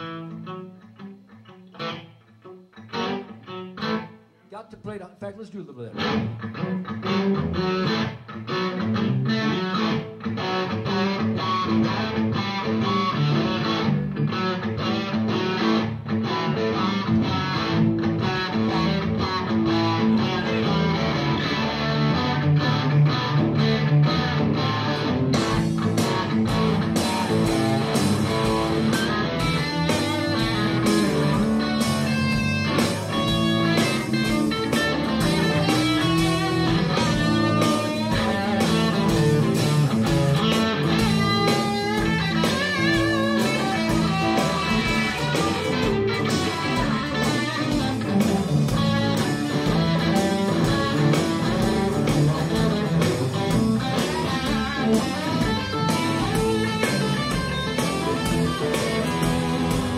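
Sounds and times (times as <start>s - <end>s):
live rock band jamming: 0.0s - 4.3s, 4.9s - 59.9s
electric guitar: 0.0s - 4.5s, 5.9s - 59.9s.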